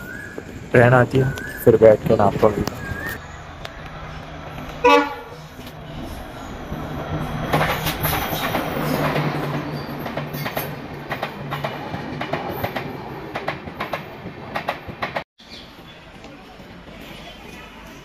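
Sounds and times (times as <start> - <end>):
train rumbling past: 0.0 - 18.0
wheels clickety-clack over rail joints: 0.0 - 18.0.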